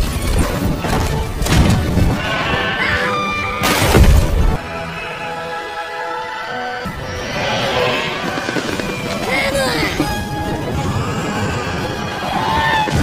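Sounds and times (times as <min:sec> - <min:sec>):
film score music: 0:00.0 - 0:13.0.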